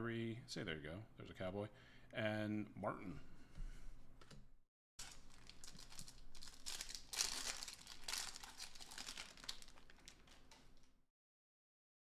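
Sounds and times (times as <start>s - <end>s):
foil wrappers crinkling and tearing: 5.0s - 10.9s.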